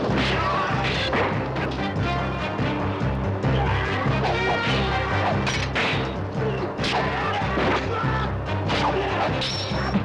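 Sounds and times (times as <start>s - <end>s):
dramatic fight music: 0.0s - 10.0s.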